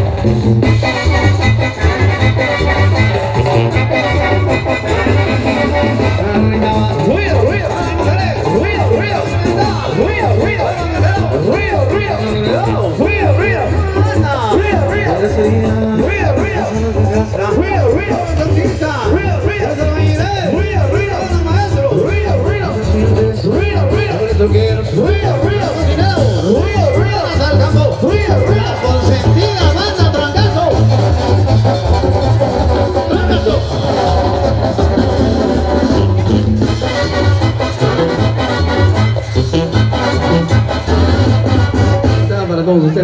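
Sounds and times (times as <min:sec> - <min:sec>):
brass and reed melody: 0:00.0 - 0:43.0
tuba bass: 0:00.0 - 0:43.0.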